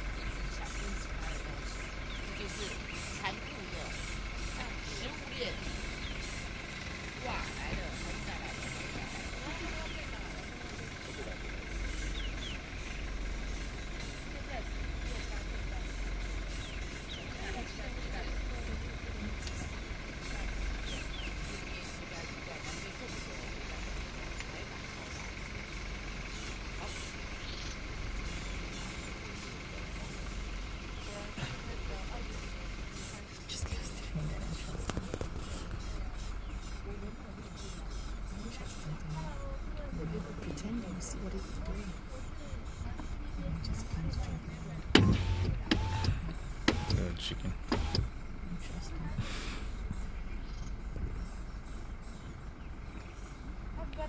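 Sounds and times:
quiet voices: 0.0s - 54.0s
steady low rumble: 0.0s - 54.0s.

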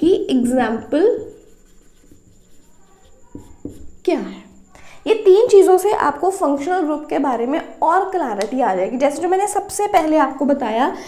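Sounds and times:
marker pen writing on whiteboard: 1.1s - 4.0s.

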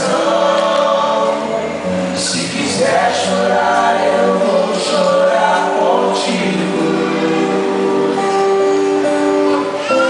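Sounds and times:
men singing a worship song: 0.0s - 8.4s
acoustic guitar: 0.0s - 10.0s.

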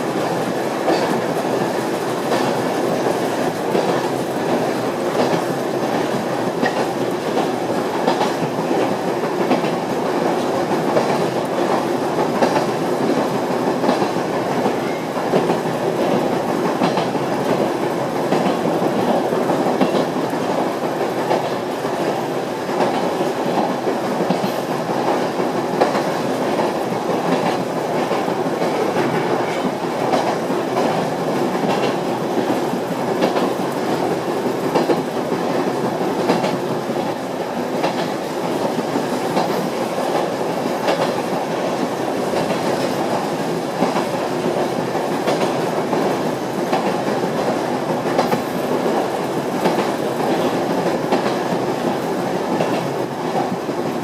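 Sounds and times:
rumble of wheels on rail: 0.0s - 54.0s.

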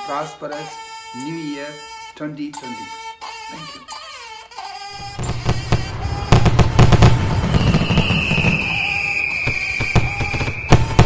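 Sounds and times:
fireworks bangs and crackles: 5.0s - 11.0s.

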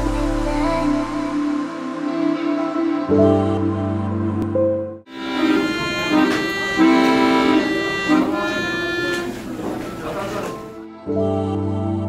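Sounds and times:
accordion melody over chords: 5.1s - 11.0s.

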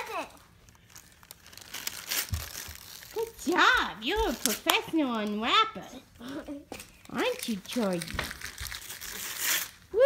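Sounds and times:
wrapping paper crinkling and tearing: 0.0s - 5.4s, 6.8s - 10.0s.

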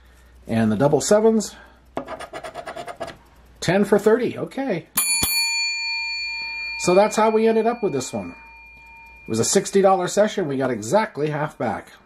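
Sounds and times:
metallic bell ding: 5.0s - 10.2s.

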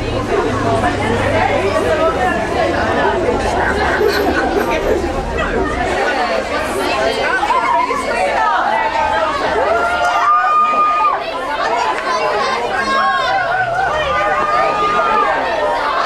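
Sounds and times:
crowd of women chattering: 0.0s - 16.0s.

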